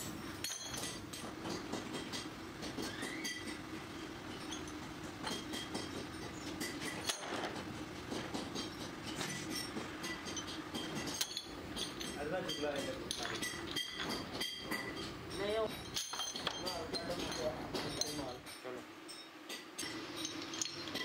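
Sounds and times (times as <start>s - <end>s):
steady machine hum: 0.0s - 21.0s
metal brake shoes clinking: 8.2s - 21.0s.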